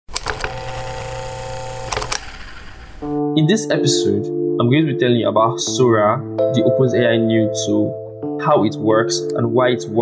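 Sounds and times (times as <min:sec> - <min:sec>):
quick clicks: 0:00.1 - 0:00.6, 0:01.8 - 0:03.1
machine hum: 0:00.1 - 0:03.2.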